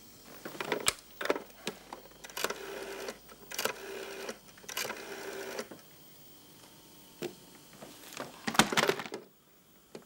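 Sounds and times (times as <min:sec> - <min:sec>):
rotary phone dial whirring: 0:01.2 - 0:05.7.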